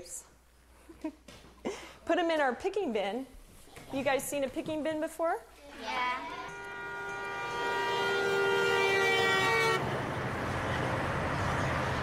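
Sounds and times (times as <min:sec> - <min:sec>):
vehicle horn chord: 0:05.7 - 0:10.1
semi truck driving past: 0:06.4 - 0:12.0.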